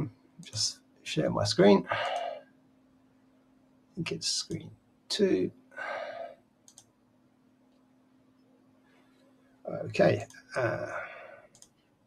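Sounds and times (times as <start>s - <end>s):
man speaking over video call: 0.0s - 2.1s, 4.0s - 5.5s, 9.7s - 11.1s
faint steady hum: 0.0s - 12.0s.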